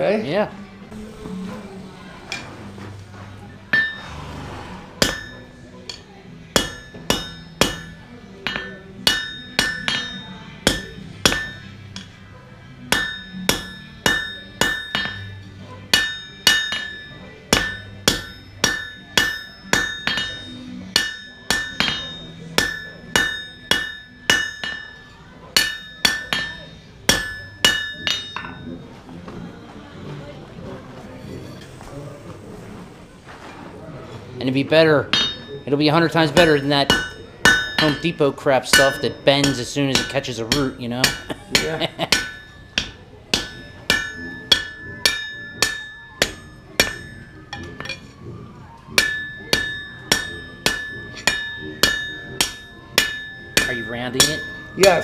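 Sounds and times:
hammer striking metal on anvil: 3.7 - 4.0, 5.0 - 12.2, 12.8 - 28.7, 35.1 - 48.2, 48.8 - 55.0.

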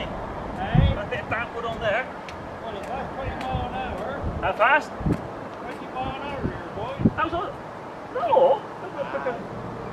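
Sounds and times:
people talking: 0.0 - 4.9, 5.6 - 9.4.

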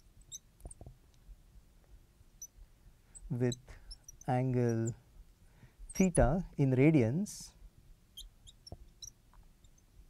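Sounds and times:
marker squeaking on glass: 3.2 - 5.0, 8.2 - 9.9.

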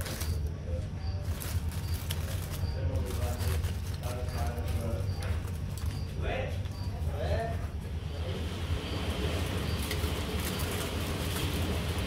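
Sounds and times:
claws scratching on mulch: 0.0 - 0.5, 1.1 - 6.1, 9.0 - 12.0
faint voices: 0.0 - 8.6.

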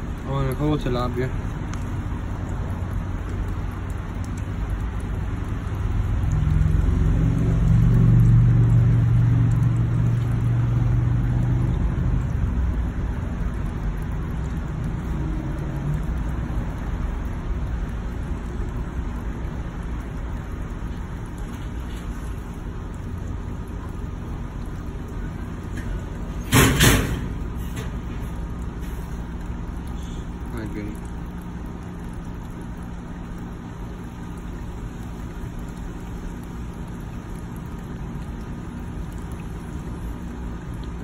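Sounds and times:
low vehicle engine hum: 0.0 - 41.0
noisy background: 0.0 - 41.0.

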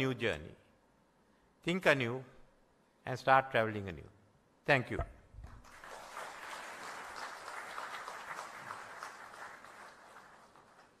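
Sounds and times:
audience applauding: 5.5 - 11.0.

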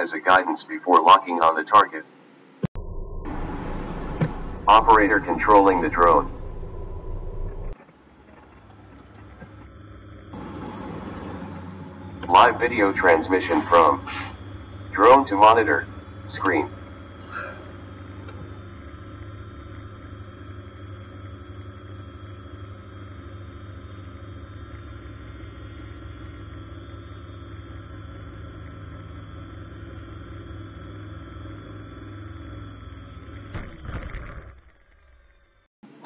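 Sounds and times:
drone motors whirring: 3.2 - 36.0.

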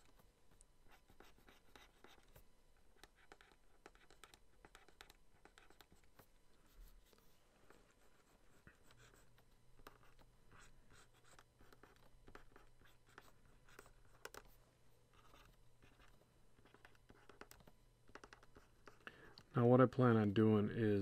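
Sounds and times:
stylus scratching on tablet: 0.0 - 19.1.

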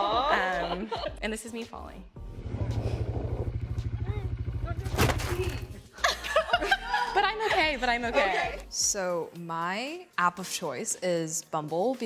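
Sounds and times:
small engine running: 2.4 - 5.0.

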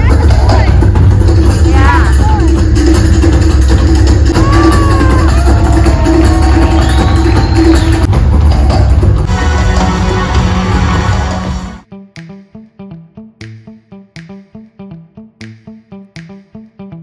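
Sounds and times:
live band music with drum kit: 0.0 - 12.4.

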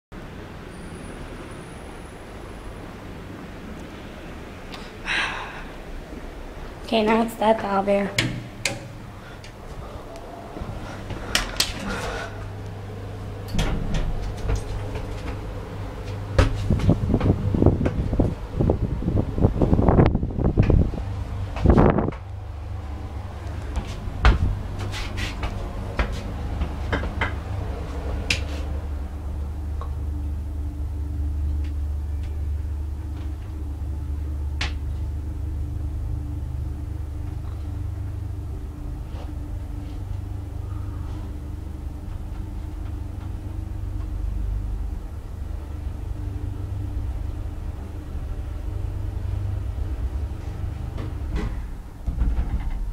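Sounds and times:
elevator hum and rumble: 0.1 - 52.9
elevator door knocks and clicks: 8.1 - 9.0, 13.4 - 18.2, 51.0 - 52.9.

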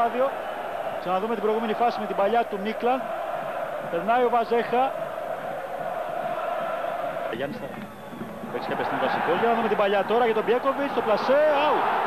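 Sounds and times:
stadium crowd chanting: 0.0 - 7.4.

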